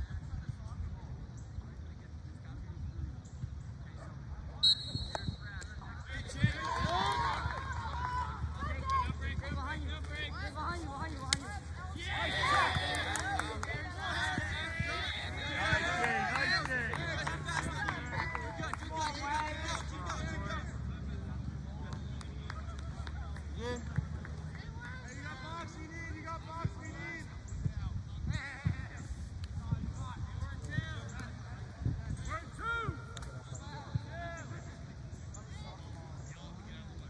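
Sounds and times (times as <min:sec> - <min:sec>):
distant players and spectators shouting: 0:03.5 - 0:37.0
lacrosse sticks clacking: 0:10.8 - 0:16.5.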